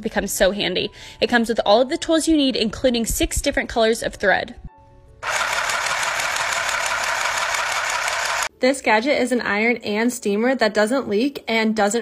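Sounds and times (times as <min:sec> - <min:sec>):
sewing machine stitching clatter: 0:05.2 - 0:08.5.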